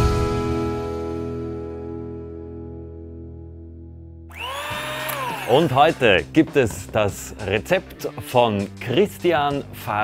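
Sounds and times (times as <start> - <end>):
electric hand mixer whining: 4.3 - 5.7.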